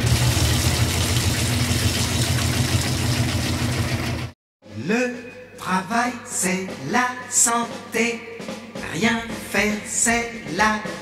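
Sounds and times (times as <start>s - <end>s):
motor running with low rumble: 0.0s - 4.3s.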